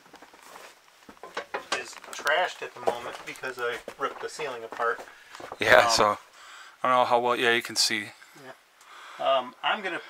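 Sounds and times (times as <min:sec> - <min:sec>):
person speaking: 0:01.6 - 0:06.2
footsteps knocking on trailer floor: 0:02.8 - 0:05.9.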